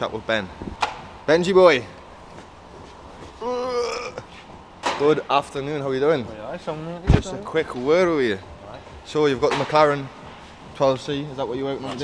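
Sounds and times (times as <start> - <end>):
person's drawn-out vocal call: 3.4 - 4.3.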